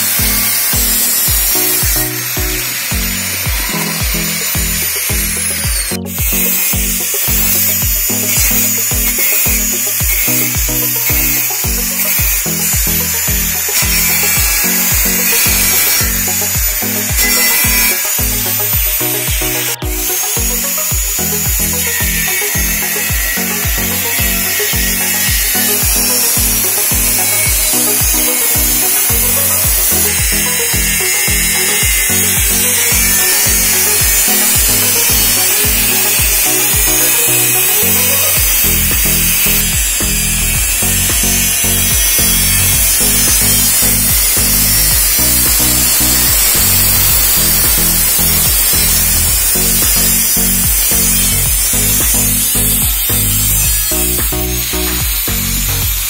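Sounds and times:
angle grinder cutting metal: 0:00.0 - 0:56.0
background music with steady beat: 0:00.0 - 0:56.0.

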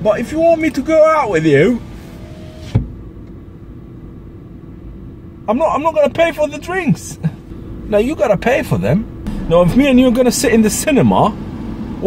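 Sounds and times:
car engine idling: 0:07.2 - 0:11.9.

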